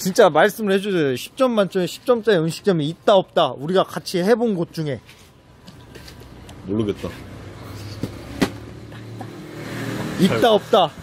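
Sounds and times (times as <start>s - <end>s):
street traffic: 0.0s - 11.0s
car engine hum: 5.8s - 11.0s.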